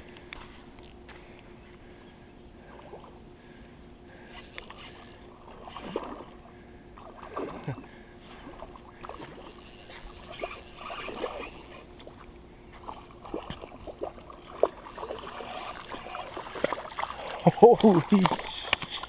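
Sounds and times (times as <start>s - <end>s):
water splashing and sloshing: 2.6s - 19.0s
fishing reel clicks: 4.2s - 5.3s, 9.1s - 11.8s, 14.9s - 19.0s.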